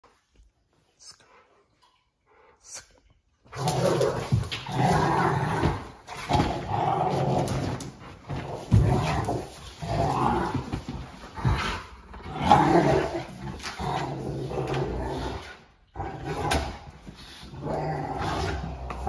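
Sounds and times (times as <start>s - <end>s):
dogs play-growling: 3.4s - 19.0s.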